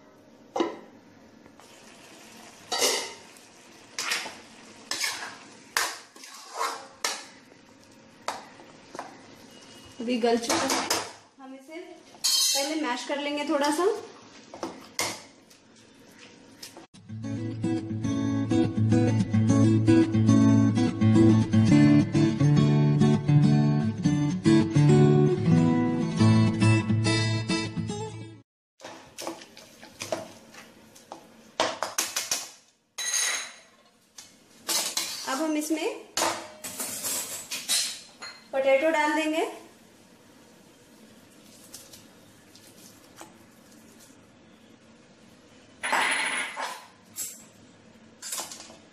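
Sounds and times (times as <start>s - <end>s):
metal utensil scraping a pan: 4.9s - 5.4s, 6.1s - 7.3s
acoustic guitar music: 17.0s - 28.4s.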